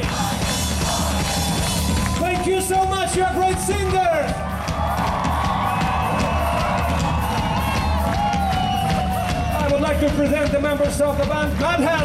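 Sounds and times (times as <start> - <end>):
crowd cheering and whooping: 0.0 - 10.5
live ska-rock band: 0.0 - 11.9.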